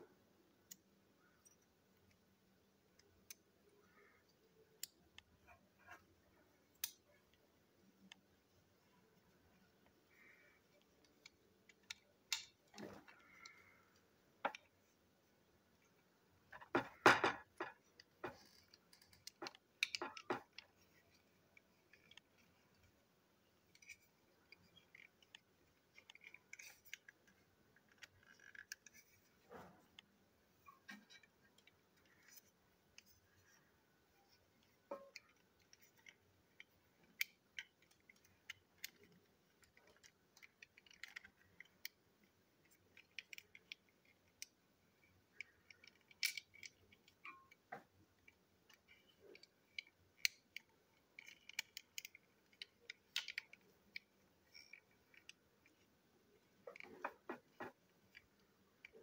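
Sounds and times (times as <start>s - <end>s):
plastic toy parts clicking: 2.9s - 8.4s, 9.8s - 13.8s, 14.4s - 15.0s, 15.6s - 33.6s, 34.3s - 59.0s.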